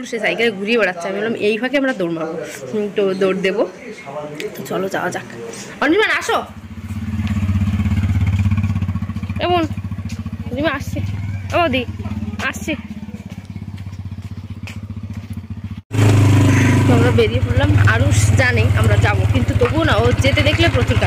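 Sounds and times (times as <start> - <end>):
motorcycle engine: 5.8 - 21.0.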